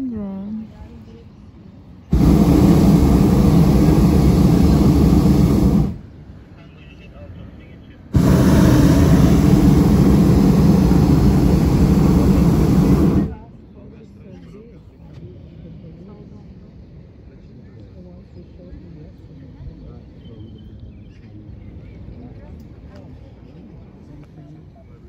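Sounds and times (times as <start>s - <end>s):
propane burner blasts: 2.1s - 6.2s, 8.1s - 13.4s.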